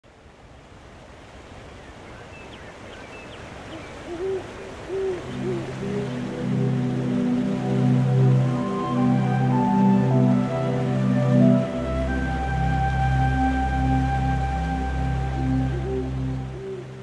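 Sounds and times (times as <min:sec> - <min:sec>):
rushing water: 0:00.0 - 0:17.0
soft hoots: 0:03.7 - 0:06.6
soft sustained music pad: 0:05.2 - 0:17.0.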